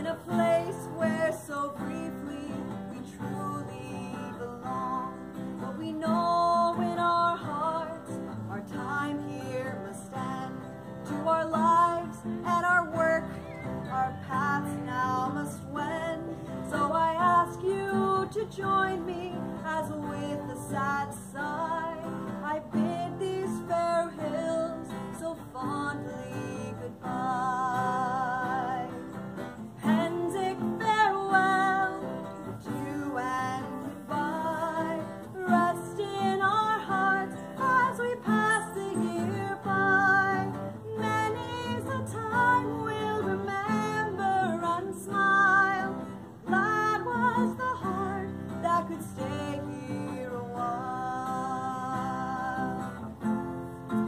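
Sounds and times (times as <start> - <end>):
acoustic guitar: 0.0 - 54.0
woman singing with vibrato: 0.0 - 54.0.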